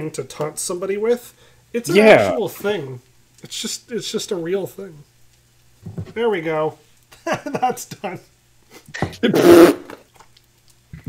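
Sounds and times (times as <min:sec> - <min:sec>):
man laughing loudly: 0:07.2 - 0:08.0.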